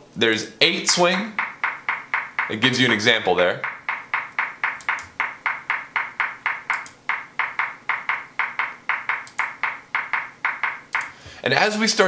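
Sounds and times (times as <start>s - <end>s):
pitched clicks in swung pattern: 1.1s - 11.2s.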